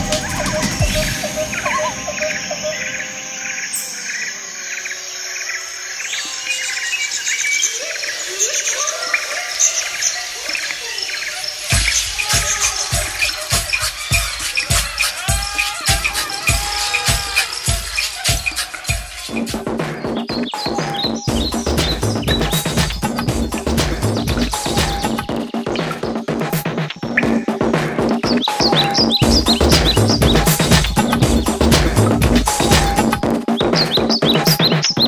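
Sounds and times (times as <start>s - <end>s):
steady drum beat: 0.0s - 2.7s, 11.7s - 35.0s
high ticking percussion: 0.0s - 4.5s, 11.5s - 35.0s
sustained tones: 0.0s - 8.2s
insects chirping: 0.0s - 35.0s.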